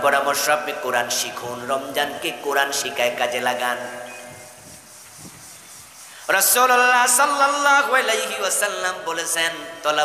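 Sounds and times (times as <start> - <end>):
faint even hiss: 1.2 - 8.7.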